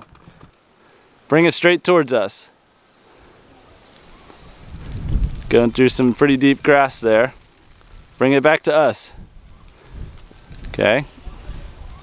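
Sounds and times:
wind buffeting microphone: 0:04.0 - 0:08.2, 0:09.1 - 0:12.0.

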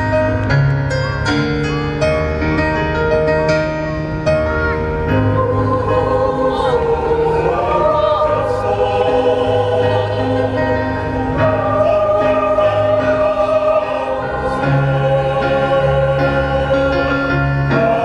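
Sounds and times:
mixed choir singing in harmony: 0:05.1 - 0:18.0.

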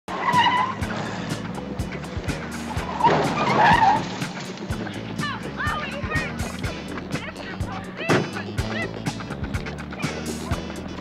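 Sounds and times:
car tyres squealing: 0:00.1 - 0:11.0
soundtrack music with drum beat: 0:00.1 - 0:11.0.

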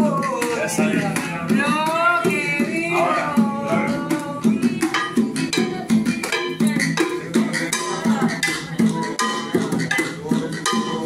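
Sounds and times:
hand drums: 0:00.0 - 0:11.0.

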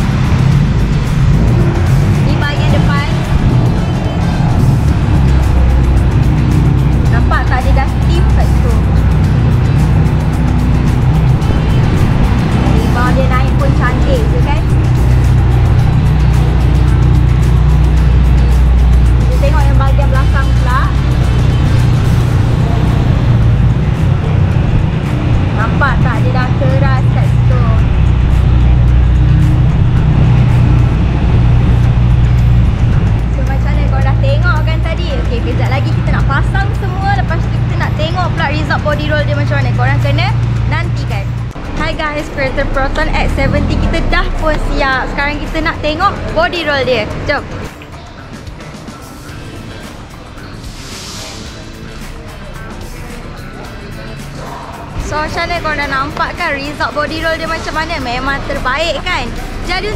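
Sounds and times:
music with heavy bass: 0:00.0 - 0:59.9.

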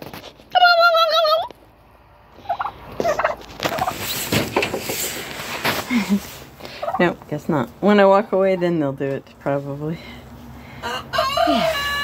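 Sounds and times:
person imitating turkey gobble: 0:00.5 - 0:01.5.

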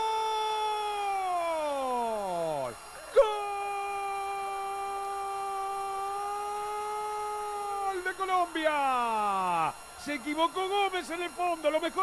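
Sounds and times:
commentator speaking: 0:07.9 - 0:12.0.

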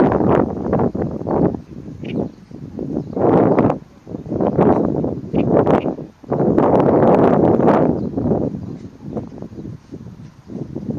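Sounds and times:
reed warbler singing: 0:00.0 - 0:10.9
wind buffeting microphone: 0:00.0 - 0:10.9.

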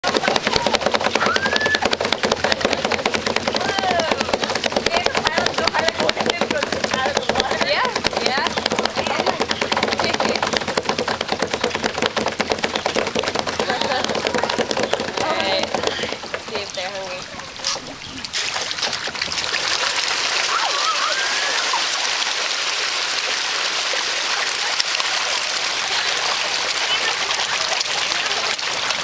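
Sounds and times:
fish splashing at water surface: 0:00.0 - 0:29.0.

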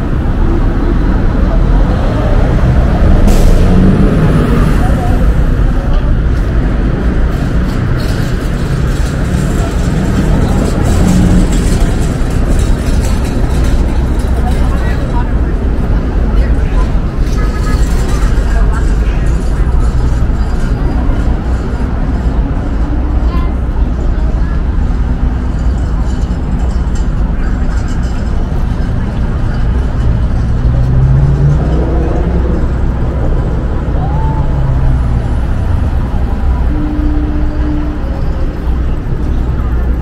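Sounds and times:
cars and trucks passing: 0:00.0 - 0:40.0
people talking: 0:01.1 - 0:07.0, 0:09.0 - 0:31.2, 0:31.8 - 0:40.0.

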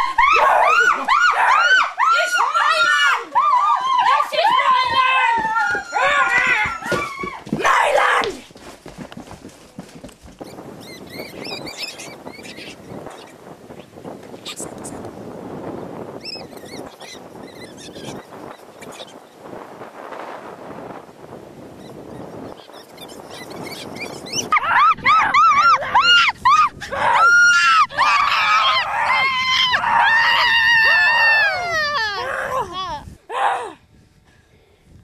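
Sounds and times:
wind buffeting microphone: 0:00.0 - 0:35.0
high-pitched screaming cries: 0:22.6 - 0:33.7.

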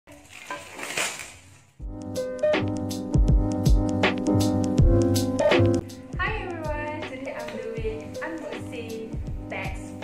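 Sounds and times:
plastic packaging crinkling: 0:00.1 - 0:01.8
keyboard music: 0:01.8 - 0:10.0.

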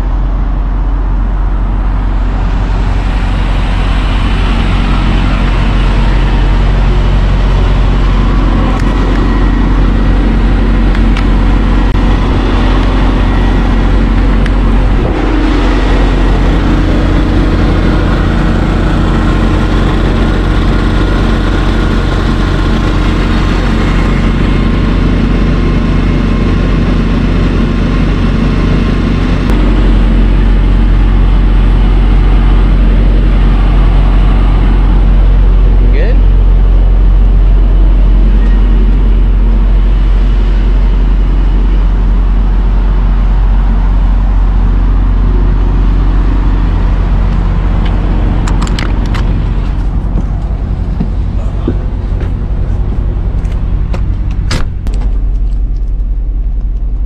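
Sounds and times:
engines idling: 0:00.0 - 0:57.0
low hum: 0:00.0 - 0:57.0.

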